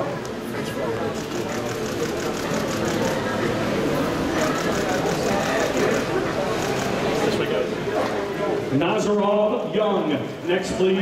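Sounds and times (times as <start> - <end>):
chatter of people: 0.0 - 11.0
rapid camera shutter clicks: 1.1 - 3.3, 4.4 - 7.3.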